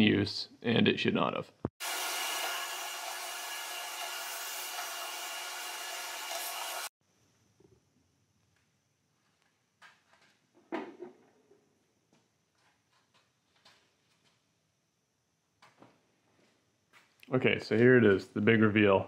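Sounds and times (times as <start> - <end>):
vacuum hose sucking sawdust: 1.8 - 6.9.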